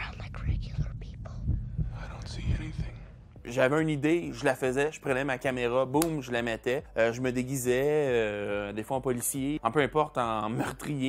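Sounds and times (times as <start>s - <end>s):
heartbeat-like low thumps: 0.0s - 3.6s.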